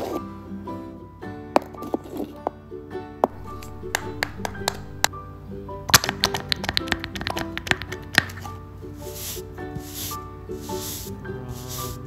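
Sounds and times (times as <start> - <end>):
light background music: 0.0 - 12.0
paper cutouts tapping: 3.2 - 5.1, 5.9 - 8.5.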